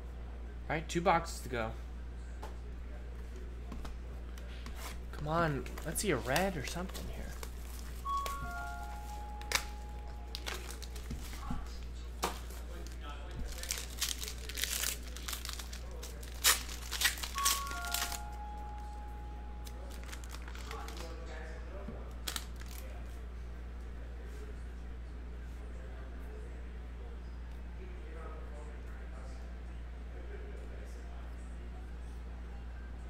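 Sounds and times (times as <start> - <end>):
plastic wrapper crackling: 5.7 - 8.8, 9.4 - 18.4, 19.6 - 21.4, 22.2 - 23.0.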